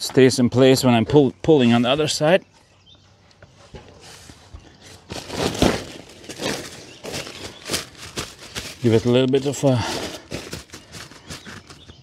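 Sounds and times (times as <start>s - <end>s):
plastic fabric rustling and crinkling: 4.8s - 12.0s.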